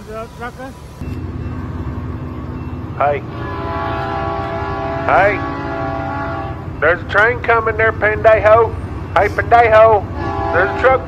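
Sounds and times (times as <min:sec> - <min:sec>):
train horn blast: 0:03.0 - 0:06.9, 0:09.8 - 0:11.0.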